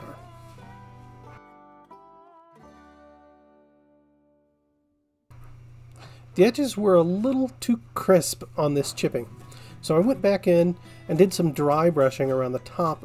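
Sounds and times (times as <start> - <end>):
low steady hum: 5.3 - 13.0.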